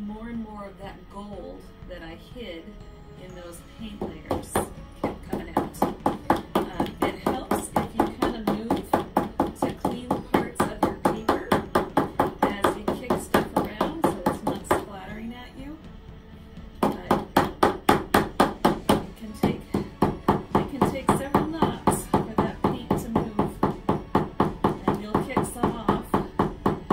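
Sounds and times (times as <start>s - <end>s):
canvas tapping on desk: 4.0s - 14.9s, 16.8s - 26.9s.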